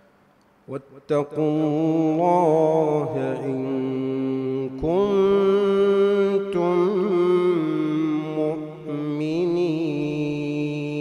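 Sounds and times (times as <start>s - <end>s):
man reciting melodically: 0.6s - 11.0s.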